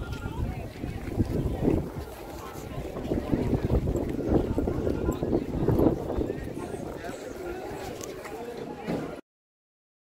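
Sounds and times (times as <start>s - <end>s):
wind buffeting microphone: 0.0s - 7.8s
people talking in background: 0.0s - 9.2s.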